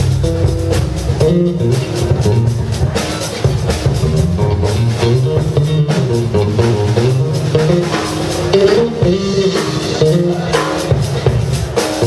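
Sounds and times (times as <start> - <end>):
bass guitar: 0.0 - 12.0
drum kit cymbals: 0.0 - 12.0
electric guitar: 0.0 - 12.0.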